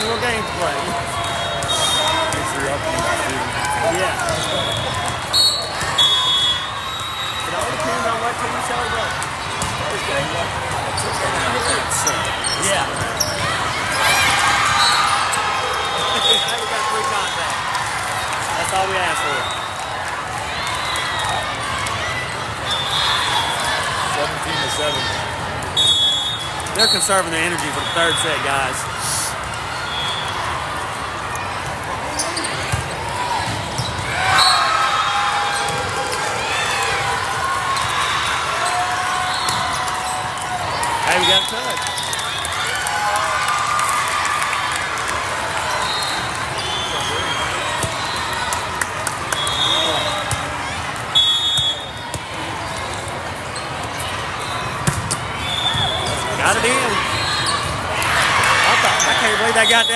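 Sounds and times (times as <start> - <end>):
volleyballs hit and bouncing: 0.6 - 6.1, 7.4 - 14.6, 29.4 - 34.4, 35.3 - 42.8, 46.1 - 59.2
shoe squeaks on court floor: 10.9 - 13.5, 32.0 - 32.9.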